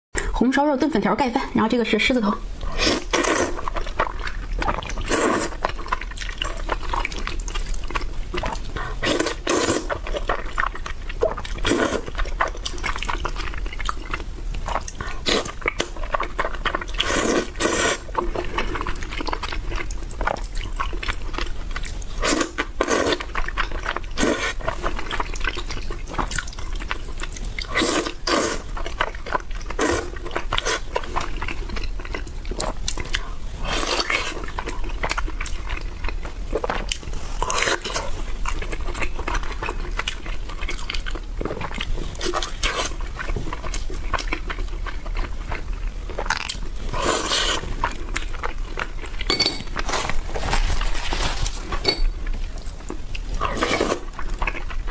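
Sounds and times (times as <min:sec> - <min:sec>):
noodle slurping: 0:02.7 - 0:07.2, 0:16.9 - 0:18.8, 0:46.9 - 0:47.8
wet chewing and mouth smacking: 0:02.7 - 0:50.2, 0:51.6 - 0:54.9.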